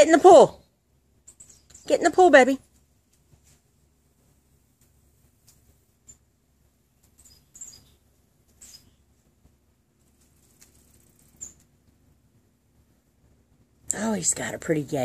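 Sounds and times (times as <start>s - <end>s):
faint bird chirps: 1.2s - 2.1s, 7.1s - 9.2s, 10.7s - 11.7s.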